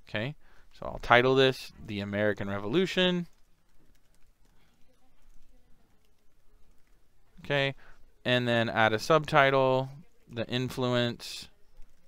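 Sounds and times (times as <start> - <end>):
typing on computer keyboard: 2.1 - 7.0.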